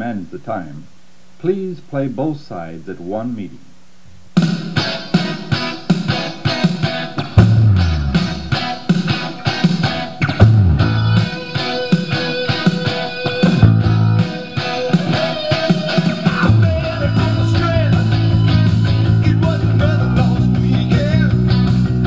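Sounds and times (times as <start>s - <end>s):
rock song with drums and guitar: 4.3s - 22.0s.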